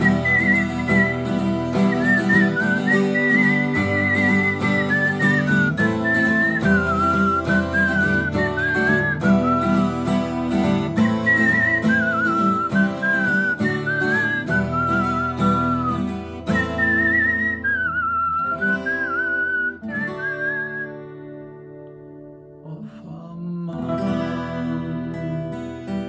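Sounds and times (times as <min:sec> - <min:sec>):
man whistling a melody: 0:00.0 - 0:22.4, 0:23.0 - 0:26.0
acoustic guitar strumming: 0:00.0 - 0:26.0.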